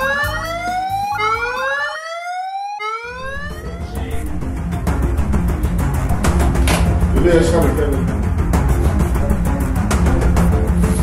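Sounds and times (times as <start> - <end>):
emergency siren whooping: 0.0 - 4.3
background music: 0.0 - 11.0.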